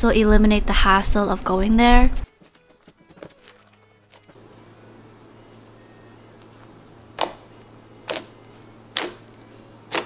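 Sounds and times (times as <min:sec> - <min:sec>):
low steady room hum: 0:00.0 - 0:10.0
sticky clicks of slime kneaded: 0:08.9 - 0:10.0.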